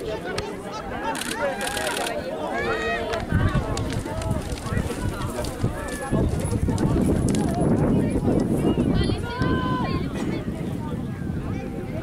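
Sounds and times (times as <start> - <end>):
onlookers talking: 0.0 - 12.0
hoofbeats galloping on dry ground: 3.5 - 8.5.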